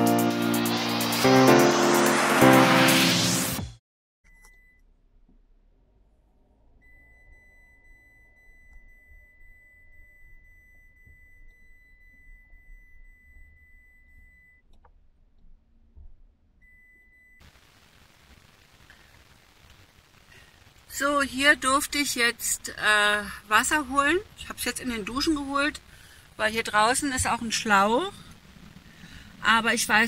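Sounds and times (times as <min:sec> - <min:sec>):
high-pitched electronic tone: 0:00.0 - 0:03.8
low rumble: 0:00.0 - 0:03.8.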